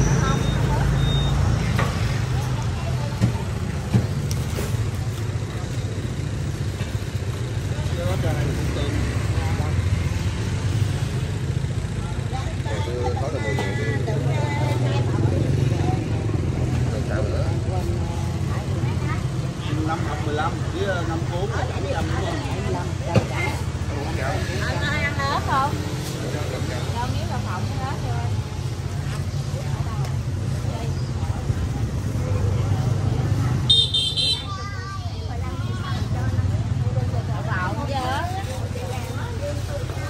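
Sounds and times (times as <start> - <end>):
indistinct voices talking: 0.0 - 4.3
busy street traffic: 0.0 - 40.0.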